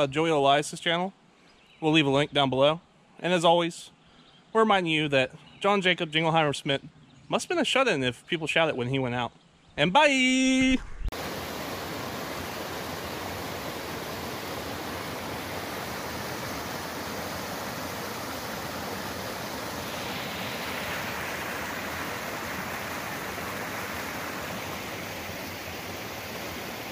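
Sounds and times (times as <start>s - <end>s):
stream rushing over rocks: 11.1s - 26.9s.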